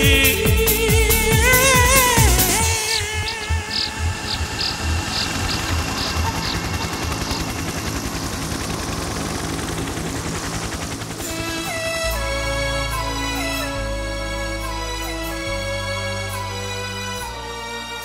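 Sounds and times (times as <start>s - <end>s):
drum beat: 0.0s - 7.5s
instrumental film music backing: 11.2s - 18.0s.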